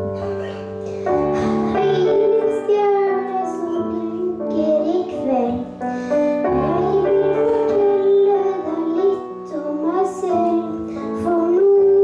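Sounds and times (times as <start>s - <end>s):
boy singing into microphone: 0.2s - 12.0s.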